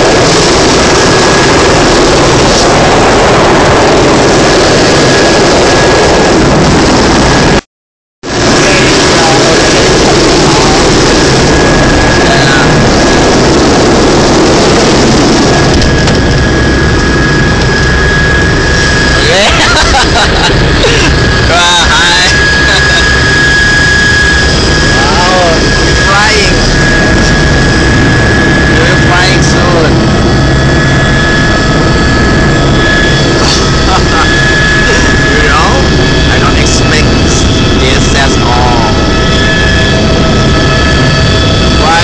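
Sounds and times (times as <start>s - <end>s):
helicopter turbine and rotor: 0.0s - 7.6s, 8.2s - 42.0s
voices: 19.1s - 23.7s, 24.8s - 27.4s, 28.7s - 30.0s, 32.8s - 39.8s, 41.8s - 42.0s.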